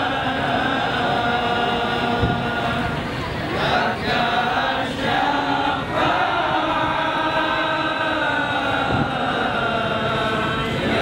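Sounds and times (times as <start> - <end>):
group vocal chanting: 0.0 - 11.0.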